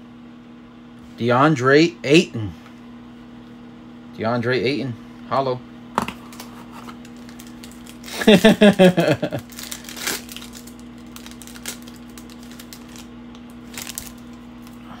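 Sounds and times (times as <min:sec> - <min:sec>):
foil wrapper crinkling: 0:06.2 - 0:14.8
man laughing: 0:08.1 - 0:09.5.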